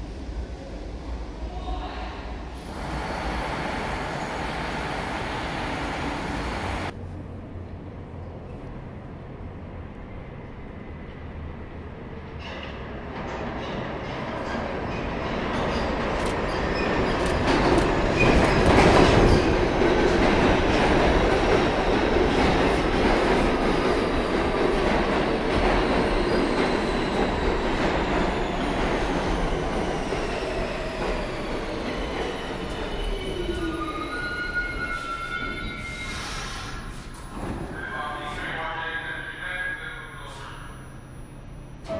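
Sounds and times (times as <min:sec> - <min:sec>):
subway train wheels rumbling: 0:00.0 - 0:41.9
train braking whine: 0:32.3 - 0:38.2
wheels squealing on rail: 0:32.4 - 0:38.0.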